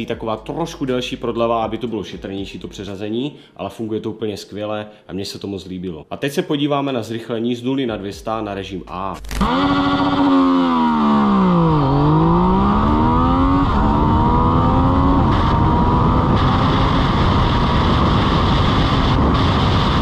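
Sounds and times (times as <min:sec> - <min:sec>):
motorcycle engine accelerating: 0:09.2 - 0:20.0
wind rush on microphone: 0:12.6 - 0:20.0.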